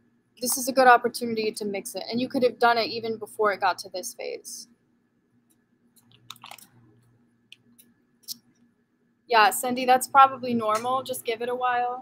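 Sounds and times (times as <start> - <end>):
plastic bag crinkling: 6.1 - 6.7.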